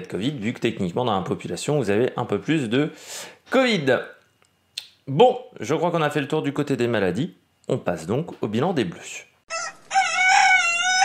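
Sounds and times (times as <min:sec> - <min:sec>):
rooster crowing: 0:09.5 - 0:11.0.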